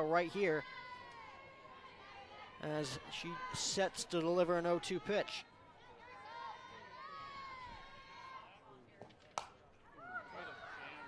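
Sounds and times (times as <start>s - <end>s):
bat cracking on ball: 9.0s - 9.6s.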